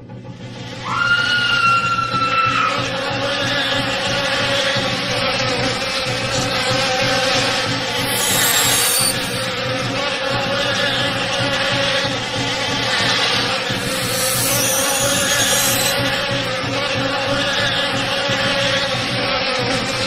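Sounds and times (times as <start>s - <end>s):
steady buzzing drone: 13.8s - 16.5s.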